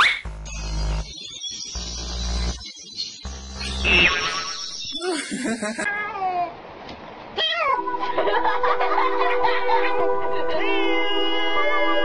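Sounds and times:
cat meowing: 0:05.9 - 0:06.6.

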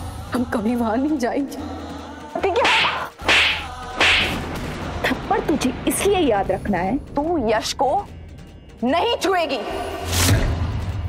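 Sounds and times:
whip-like swish effects: 0:02.6 - 0:04.4.

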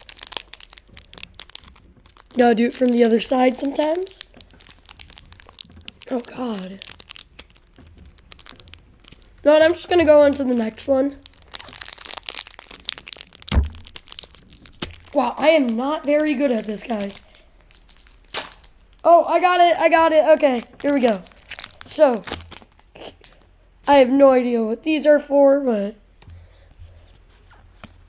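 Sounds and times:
foil wrapper crinkling: 0:00.0 - 0:23.5
loud thump: 0:13.5 - 0:13.9.

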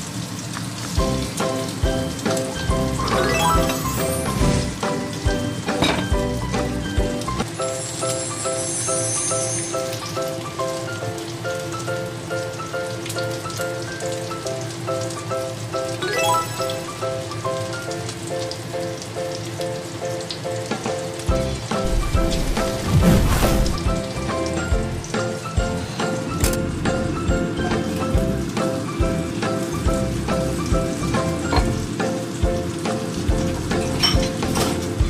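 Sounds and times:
fish deep-frying in oil: 0:00.0 - 0:35.0
background music with repeating notes: 0:01.0 - 0:08.6, 0:09.8 - 0:18.5, 0:23.8 - 0:34.4.

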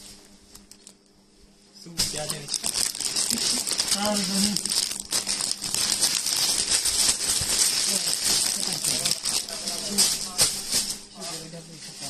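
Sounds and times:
plastic bags crinkling: 0:02.0 - 0:12.0.

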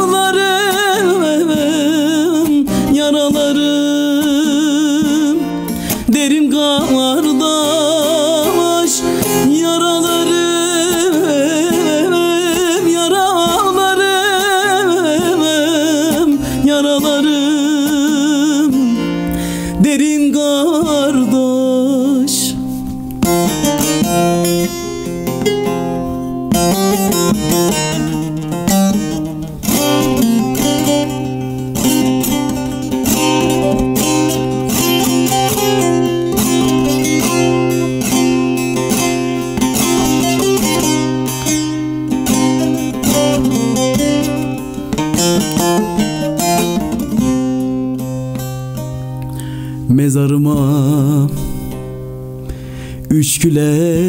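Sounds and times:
plucked long-necked lute: 0:00.0 - 0:54.0.

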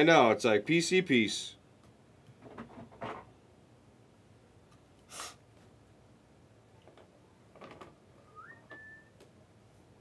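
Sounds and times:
faint whistle-like tone: 0:08.2 - 0:09.2.

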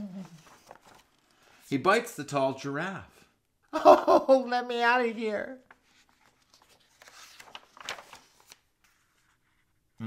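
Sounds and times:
paper page turning: 0:00.0 - 0:01.6, 0:05.6 - 0:09.7.

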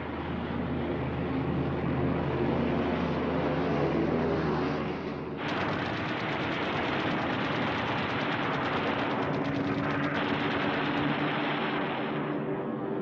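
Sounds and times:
aircraft engine drone: 0:00.0 - 0:13.0
machine-gun fire: 0:05.4 - 0:12.4.

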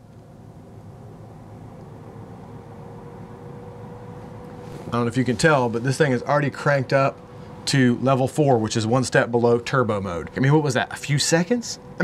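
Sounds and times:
air purifier fan rushing: 0:00.0 - 0:12.0
faint hum: 0:00.0 - 0:12.0.

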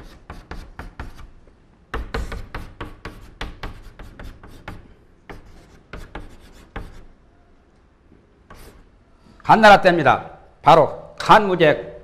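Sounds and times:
chalk writing on blackboard: 0:00.0 - 0:07.2, 0:08.4 - 0:08.9.

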